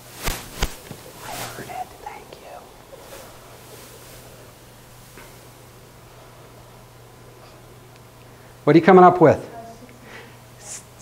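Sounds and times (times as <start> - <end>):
low electrical hum: 0.0 - 11.0
faint whispered voices: 1.1 - 3.6.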